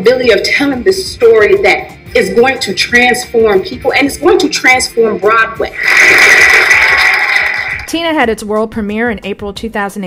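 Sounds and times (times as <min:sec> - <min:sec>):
people applauding and cheering: 0:05.7 - 0:07.9.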